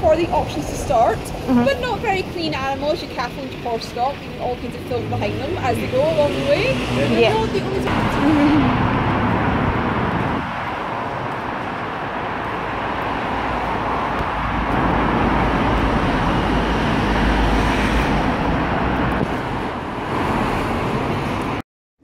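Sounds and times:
city street traffic: 0.0 - 21.6
vehicle engine rumble: 0.0 - 21.6.

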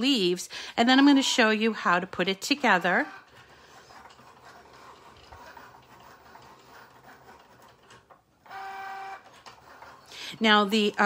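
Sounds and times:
cutting machine whine: 8.4 - 9.3
cutting machine whirring: 8.4 - 9.9.

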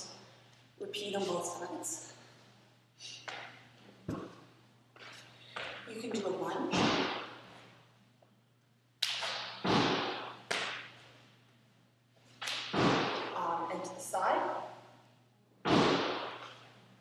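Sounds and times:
heavy thuds in gym hall: 6.7 - 7.4, 9.4 - 10.8, 12.6 - 13.4, 15.6 - 16.4.

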